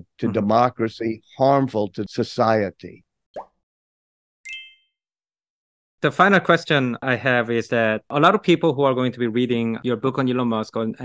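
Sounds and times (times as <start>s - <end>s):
bright chime: 4.5s - 4.9s.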